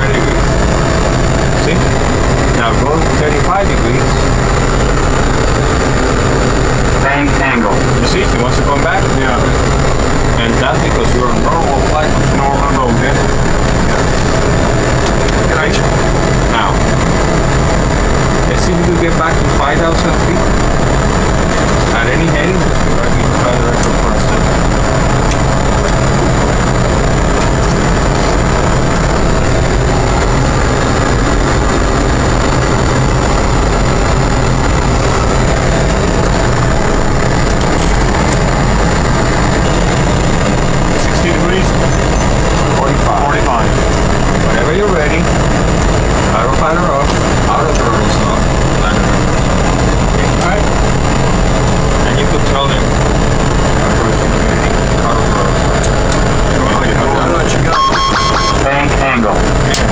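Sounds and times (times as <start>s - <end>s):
simulated engine and airflow rumble: 0.0s - 59.9s.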